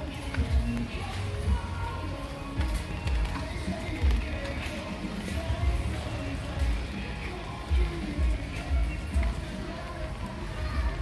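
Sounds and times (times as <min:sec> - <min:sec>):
background music: 0:00.0 - 0:11.0
voices: 0:00.0 - 0:11.0.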